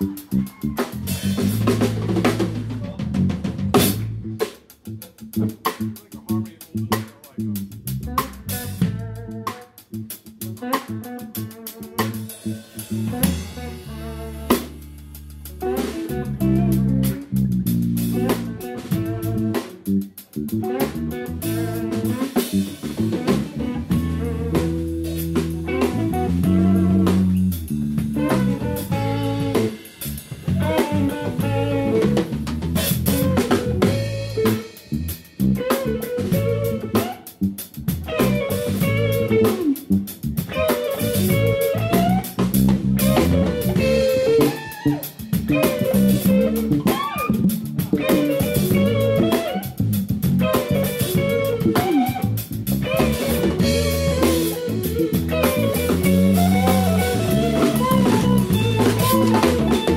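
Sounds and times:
electric bass notes: 0.0s - 59.9s
electric guitar: 0.0s - 59.9s.

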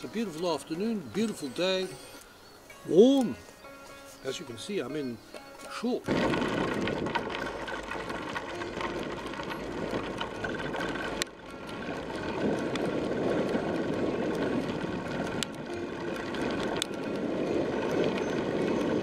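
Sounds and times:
wheels rolling on gravel: 0.0s - 19.0s.

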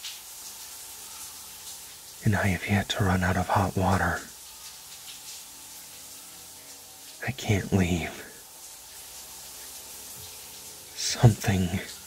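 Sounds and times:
shower water spraying: 0.0s - 12.0s.

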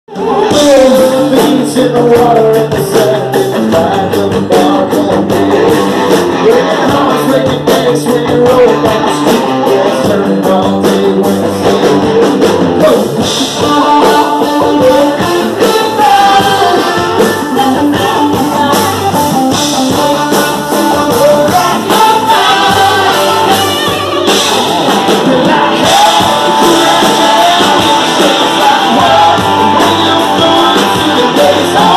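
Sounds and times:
drum kit: 0.1s - 31.9s
electric guitar: 0.1s - 31.9s
live rock band playing loud: 0.1s - 31.9s
man singing into a microphone: 0.1s - 31.9s.

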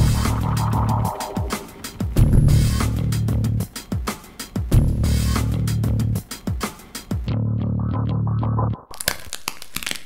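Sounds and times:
low bass note: 0.0s - 1.6s.

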